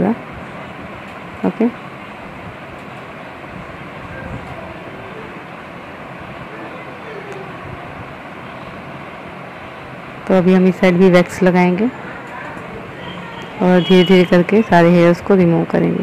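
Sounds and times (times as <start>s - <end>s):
steady background noise: 0.0s - 16.0s
faint distant voices: 1.4s - 16.0s.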